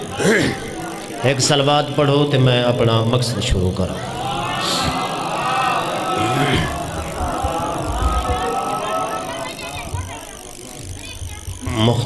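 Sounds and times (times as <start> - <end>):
congregation reciting: 0.0 - 10.9.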